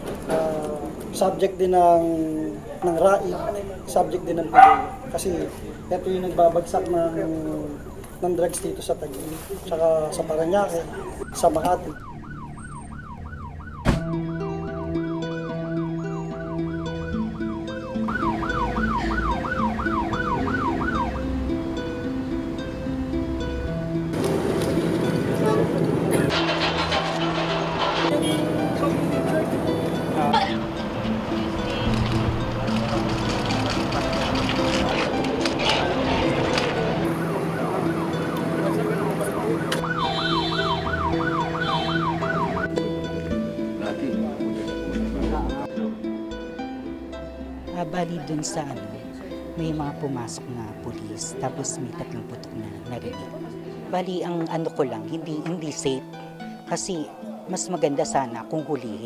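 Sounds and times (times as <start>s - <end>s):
low held music notes: 0.0s - 56.7s
street noise: 0.0s - 59.0s
police siren yelping: 3.0s - 9.0s, 10.0s - 43.0s.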